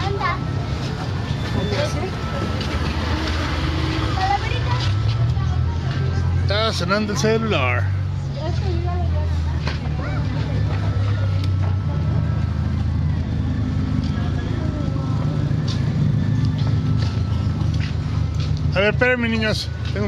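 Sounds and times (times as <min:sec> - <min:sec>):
faint voices: 0:00.0 - 0:20.0
steady low street rumble: 0:00.0 - 0:20.0.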